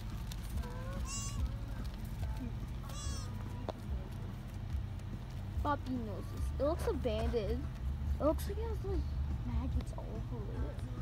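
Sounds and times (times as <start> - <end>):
steady low rumble: 0.0 - 11.0
high honking animal call: 0.6 - 1.5, 2.8 - 3.4.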